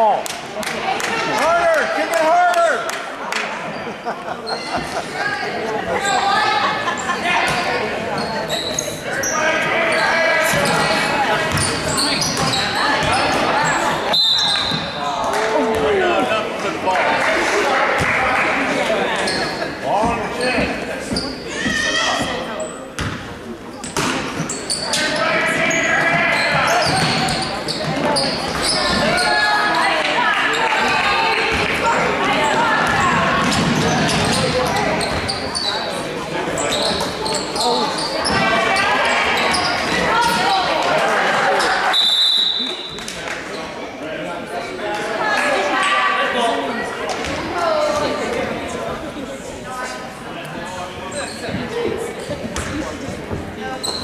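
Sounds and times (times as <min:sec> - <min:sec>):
players and spectators voices: 0:00.0 - 0:54.0
referee whistle blast: 0:41.9 - 0:43.0.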